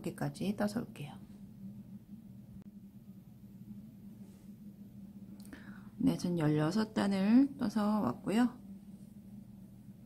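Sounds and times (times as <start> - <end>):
steady low hum: 0.0 - 10.0
short breath: 5.5 - 6.0.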